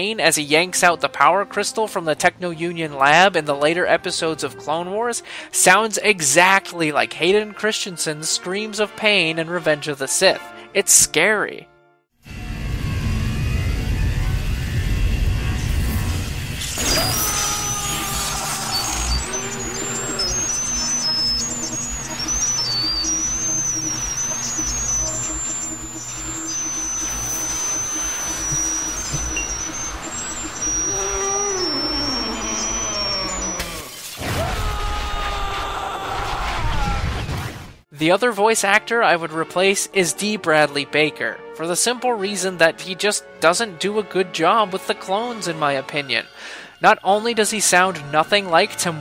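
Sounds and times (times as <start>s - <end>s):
high electrical whine: 12.2s - 34.2s
heavy low rumble: 12.3s - 16.8s
dramatic music: 12.3s - 33.9s
man screaming in pain: 16.8s - 20.2s, 30.9s - 37.1s.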